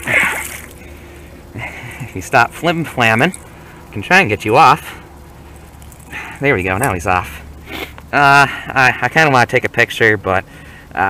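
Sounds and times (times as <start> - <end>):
fish splashing in water: 0.0 - 0.9.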